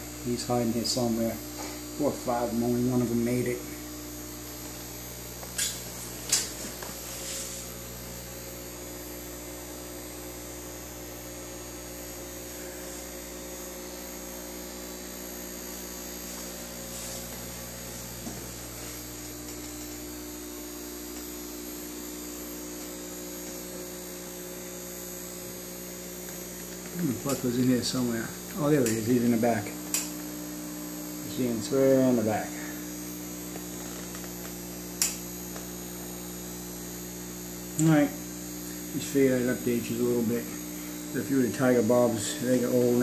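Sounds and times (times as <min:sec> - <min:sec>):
steady electrical hum: 0:00.0 - 0:43.0.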